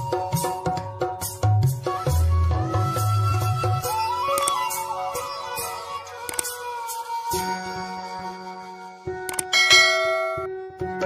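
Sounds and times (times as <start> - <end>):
quick clicks: 9.3 - 9.5
bright bell chime: 9.5 - 10.5.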